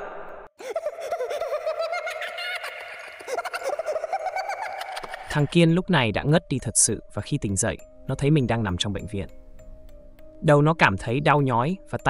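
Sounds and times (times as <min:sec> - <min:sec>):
child's high-pitched giggles: 0:00.6 - 0:05.3.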